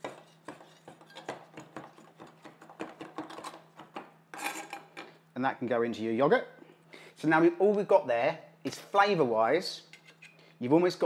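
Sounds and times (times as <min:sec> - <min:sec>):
knife scraping on board: 0:00.0 - 0:02.6, 0:09.9 - 0:10.4.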